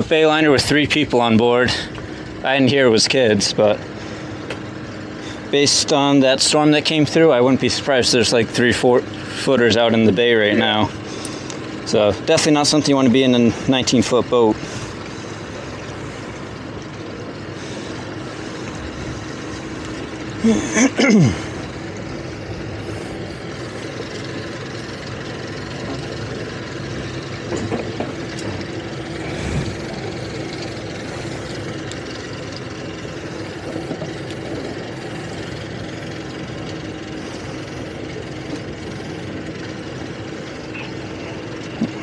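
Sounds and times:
outboard engines idling: 0.0 - 42.0.

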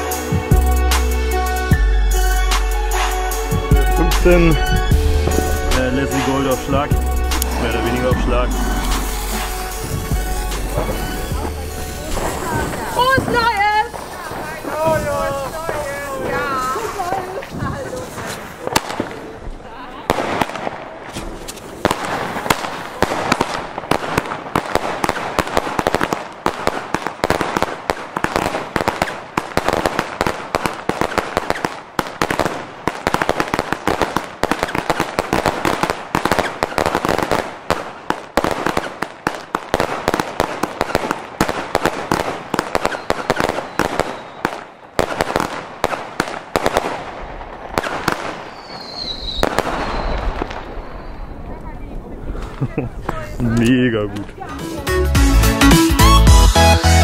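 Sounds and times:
crackling firework bursts: 2.2 - 53.6
firework launch thumps: 4.2 - 19.3, 20.1 - 44.2
high falling firework whistle: 42.8 - 45.2, 48.4 - 51.4.

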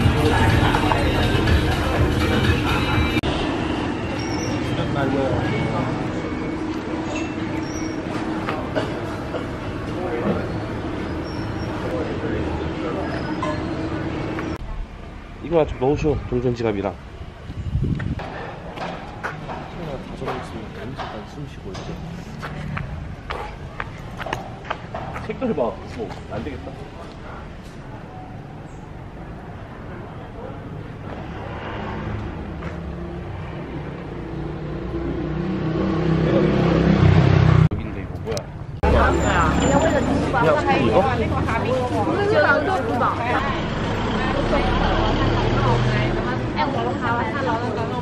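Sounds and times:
people talking: 37.7 - 48.0.

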